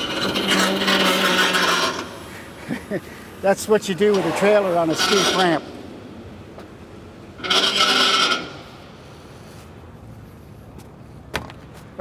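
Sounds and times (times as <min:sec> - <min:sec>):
rasping scrape: 0:00.0 - 0:02.3, 0:04.0 - 0:05.7, 0:07.4 - 0:09.0.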